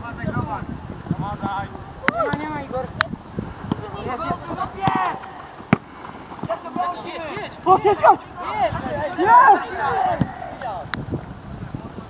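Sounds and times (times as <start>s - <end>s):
players shouting: 1.2s - 3.0s, 3.6s - 10.9s
football kick thuds: 3.6s - 8.0s, 10.1s - 10.4s.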